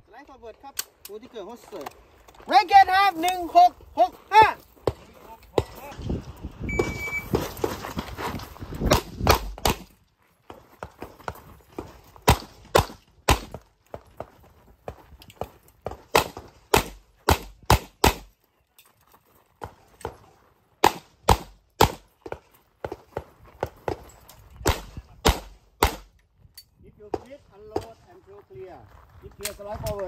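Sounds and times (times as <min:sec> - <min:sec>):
pistol shots: 0:12.2 - 0:13.6, 0:20.8 - 0:22.0, 0:24.6 - 0:26.1.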